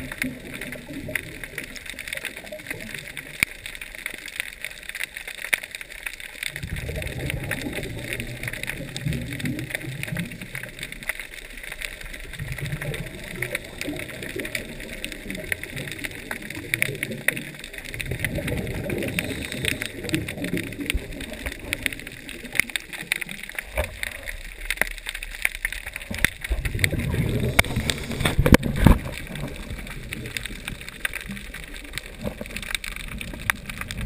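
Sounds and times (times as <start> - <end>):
fine crackle of clicks: 0.0 - 34.0
scuba regulator bubbling exhalations: 6.5 - 11.0, 12.0 - 24.5, 26.4 - 34.0.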